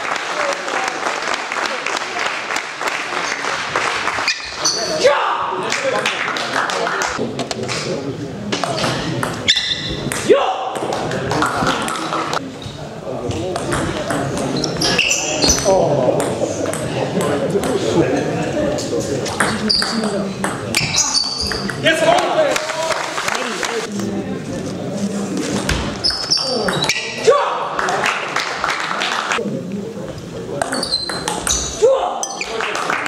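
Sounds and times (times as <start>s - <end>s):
murmur of voices: 0.0s - 33.0s
shoes squeaking on floor: 4.2s - 5.0s, 8.7s - 10.1s, 12.5s - 12.9s, 14.4s - 15.8s, 19.4s - 21.8s, 25.6s - 27.2s, 30.6s - 32.6s
table tennis ball bouncing: 8.5s - 12.2s, 13.4s - 14.9s, 19.3s - 22.3s, 30.6s - 32.4s.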